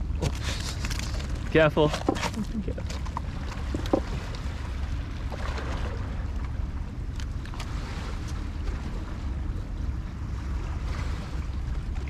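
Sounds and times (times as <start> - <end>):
waves lapping against rocks: 0.0 - 9.5, 10.2 - 12.0
wind rumble on microphone: 0.0 - 12.0.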